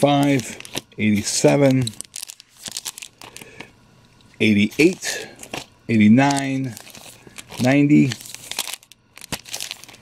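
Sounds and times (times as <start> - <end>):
plastic sleeves crinkling: 0.0 - 3.7, 4.5 - 10.0.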